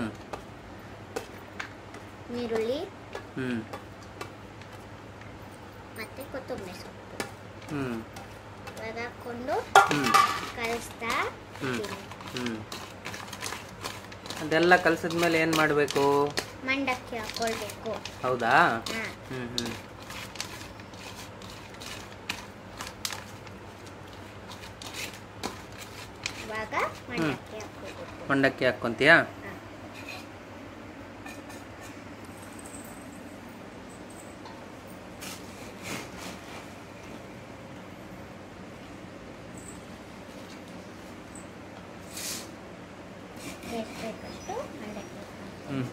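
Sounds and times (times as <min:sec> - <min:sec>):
low background hum: 0:00.0 - 0:45.9
vegetables clicking in steel bowl: 0:09.9 - 0:20.8.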